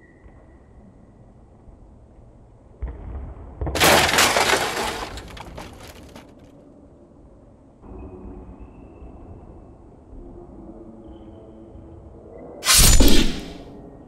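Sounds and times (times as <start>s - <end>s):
glass shattering: 3.8s - 6.2s.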